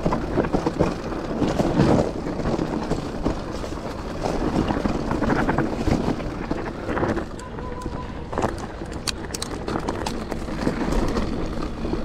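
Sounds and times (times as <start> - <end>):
bike rattling and knocking: 0.0 - 12.0
bike tyres rumbling on rock: 0.0 - 12.0
wind buffeting microphone: 0.0 - 12.0.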